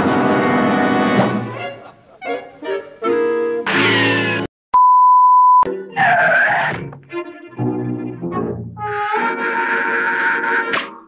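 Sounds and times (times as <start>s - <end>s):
cartoon music with brass: 0.0s - 4.5s, 5.7s - 11.0s
single-tone beep: 4.8s - 5.7s.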